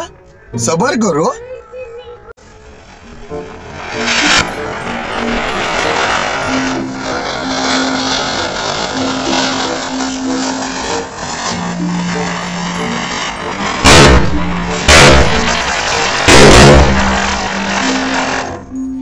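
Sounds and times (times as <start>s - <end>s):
ground spinner firework hissing: 2.4s - 19.0s
firecracker bang: 2.8s - 18.6s
background music: 3.0s - 19.0s.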